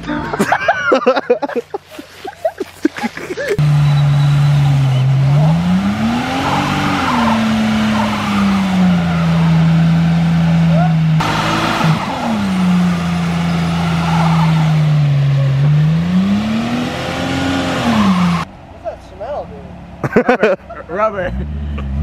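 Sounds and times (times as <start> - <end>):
tires churning snow: 0.4 - 22.0
car engine revving: 3.6 - 18.6, 21.0 - 22.0.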